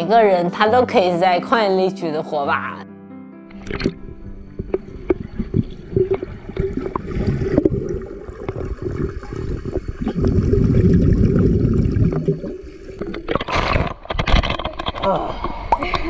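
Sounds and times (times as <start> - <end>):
swimmer moving underwater: 3.5 - 14.9
water splashing at surface: 3.5 - 15.0
underwater bubbling: 3.5 - 15.9.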